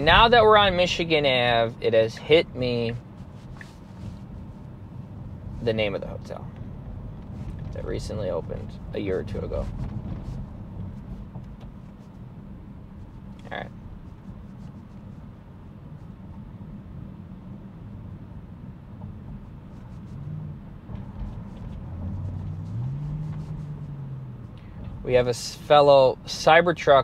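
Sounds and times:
tyre and road rumble: 0.0s - 27.0s
low hum rising in pitch: 16.0s - 25.1s.

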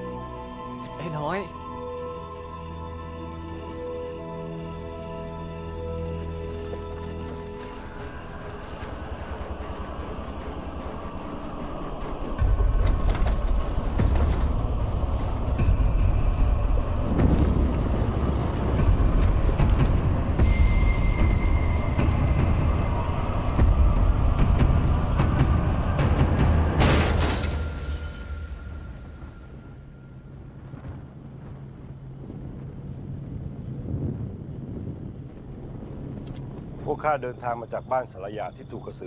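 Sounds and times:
dense crackling: 5.6s - 39.0s
deep loud rumble: 7.9s - 37.9s.

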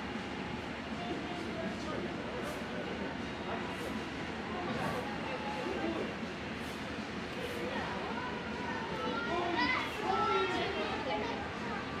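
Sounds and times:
young children chattering: 7.4s - 12.0s.

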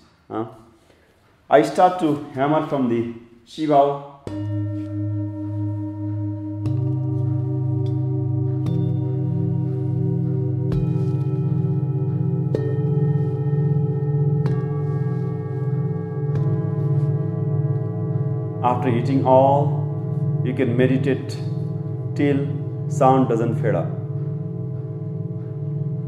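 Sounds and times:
padded mallet striking bowls: 4.2s - 26.0s
singing bowls ringing: 4.3s - 26.0s.

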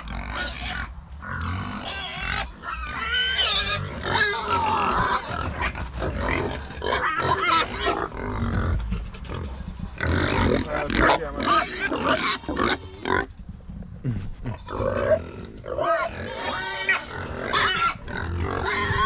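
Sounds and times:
pigs squealing: 0.0s - 13.3s, 14.4s - 19.0s.

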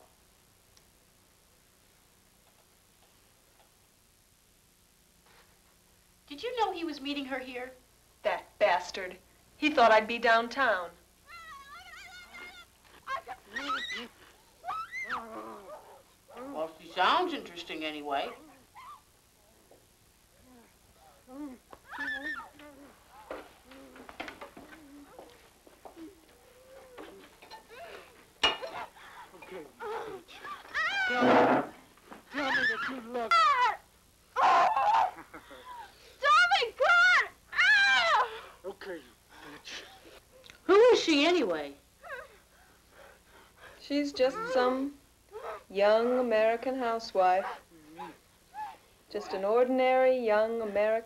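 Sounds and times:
high-pitched vocal cries: 11.2s - 16.7s, 18.3s - 19.1s, 20.4s - 31.4s, 32.3s - 38.5s, 42.0s - 42.5s, 47.4s - 49.4s
woman crying and moaning: 11.2s - 16.7s, 20.4s - 31.3s, 32.3s - 33.8s, 34.4s - 36.4s, 37.6s - 38.6s, 42.0s - 42.5s.

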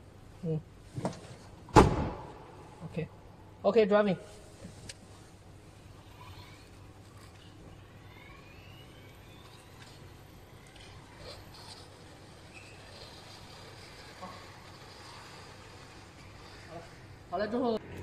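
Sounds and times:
low steady hum: 0.0s - 18.0s
electric motor whine: 6.1s - 18.0s.

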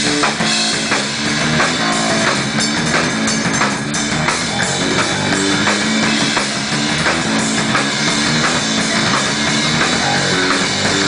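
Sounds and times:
drum kit rock groove: 0.0s - 11.0s
electric bass line: 0.0s - 11.0s.

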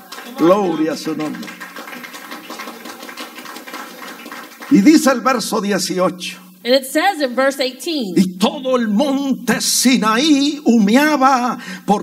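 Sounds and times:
faint scattered clapping: 0.0s - 4.9s.

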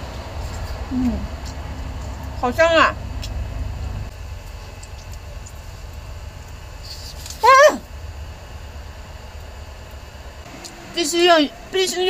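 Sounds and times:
low rumble with hiss: 0.0s - 12.0s.

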